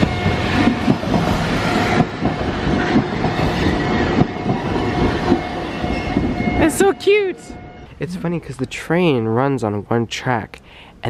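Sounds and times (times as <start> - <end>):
train wheels clacking over rail joints: 0.0 - 6.6
level crossing bell ringing: 5.8 - 8.4.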